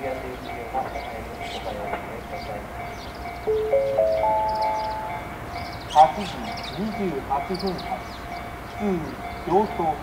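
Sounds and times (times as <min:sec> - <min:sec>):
rising four-note chime: 0:03.5 - 0:05.2.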